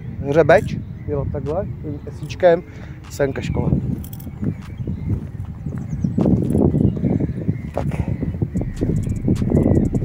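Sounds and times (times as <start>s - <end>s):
wind buffeting microphone: 0.0s - 10.0s
footsteps walking: 3.8s - 7.0s.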